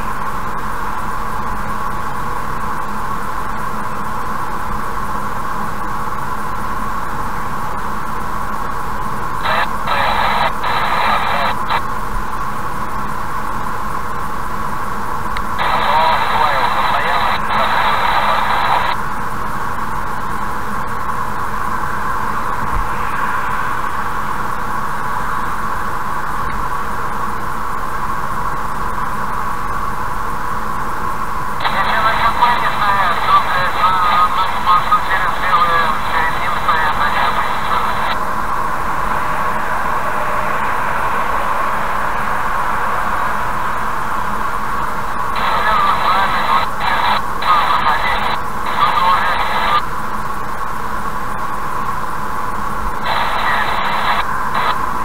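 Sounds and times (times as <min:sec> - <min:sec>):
tinny radio voice chatter: 0:09.4 - 0:11.8, 0:15.5 - 0:19.0, 0:31.6 - 0:38.3, 0:45.2 - 0:49.9, 0:53.0 - 0:54.8.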